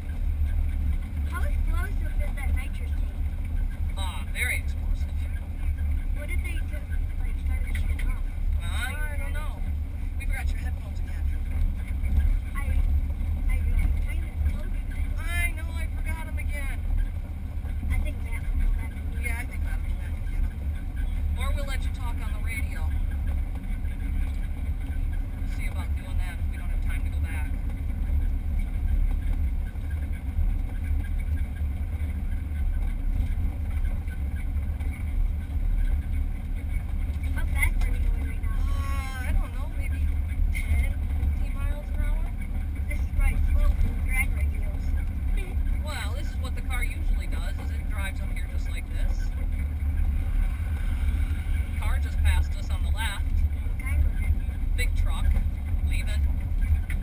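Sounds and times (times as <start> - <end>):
faint muffled voices: 0.0 - 27.8
low rumble inside race car: 0.0 - 57.0.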